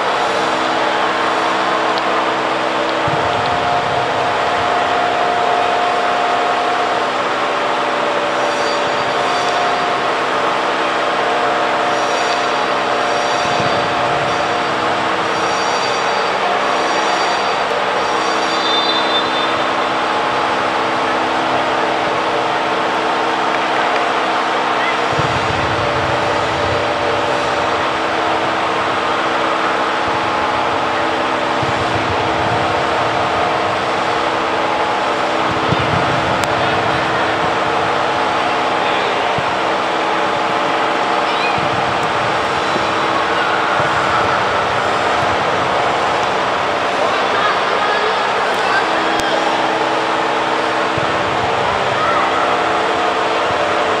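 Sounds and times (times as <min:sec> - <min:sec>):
constant rushing noise: 0:00.0 - 0:54.0
distant voices: 0:00.0 - 0:54.0
steady hum: 0:00.0 - 0:54.0.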